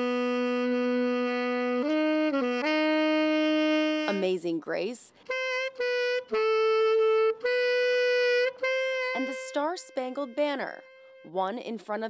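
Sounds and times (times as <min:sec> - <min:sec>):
alto saxophone slow melody: 0:00.0 - 0:04.5, 0:05.2 - 0:11.3.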